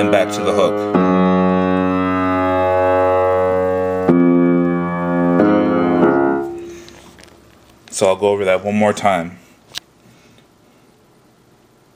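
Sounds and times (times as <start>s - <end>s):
piano chords: 0.0s - 7.5s.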